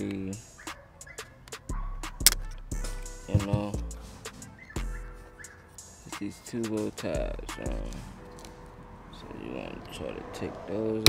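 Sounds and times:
hip-hop instrumental music: 0:00.0 - 0:11.0.

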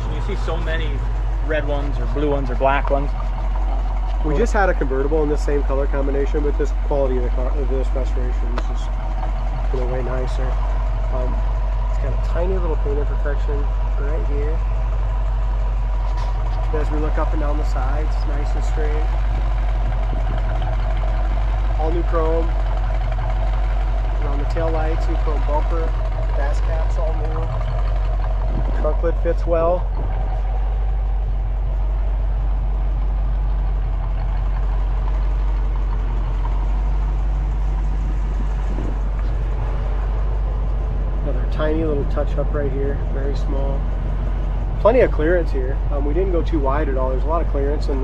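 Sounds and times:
car engine idling: 0:00.0 - 0:48.0.

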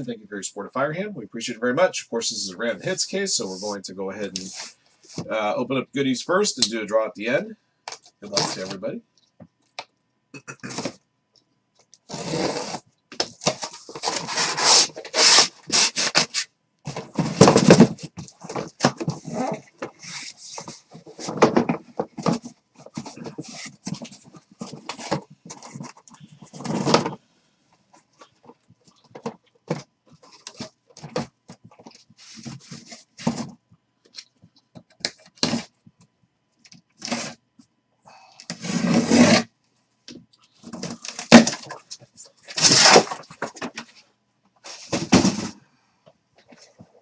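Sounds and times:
cardboard and tape scraping: 0:12.0 - 0:27.2, 0:37.0 - 0:37.4, 0:38.5 - 0:39.5, 0:40.6 - 0:43.9, 0:44.6 - 0:45.6.

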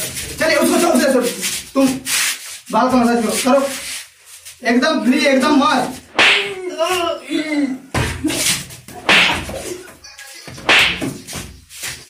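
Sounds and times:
open-handed slaps: 0:06.1 - 0:06.6, 0:08.0 - 0:09.6, 0:10.6 - 0:12.0.

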